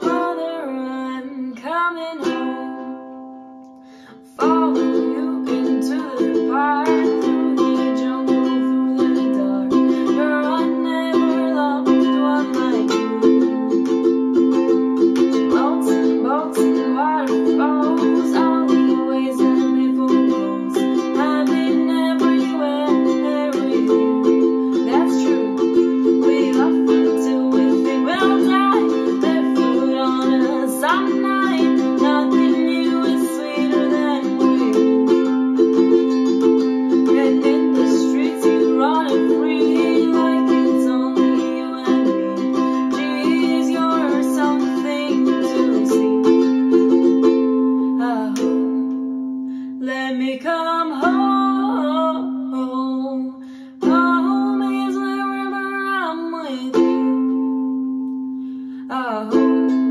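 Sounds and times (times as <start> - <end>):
ukulele strumming: 0.0 - 59.9.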